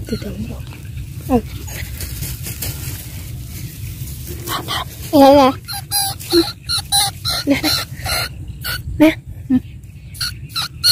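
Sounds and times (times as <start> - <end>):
low rumble: 0.0 - 10.2
dog yelping: 4.5 - 8.9, 10.2 - 10.9.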